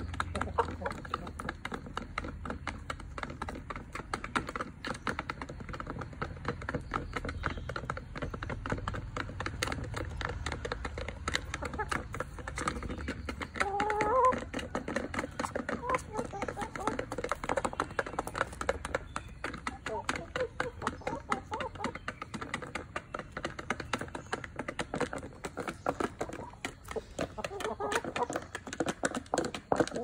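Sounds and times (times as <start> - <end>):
beaks pecking plastic dish: 0.0 - 30.0
hens clucking: 0.0 - 30.0.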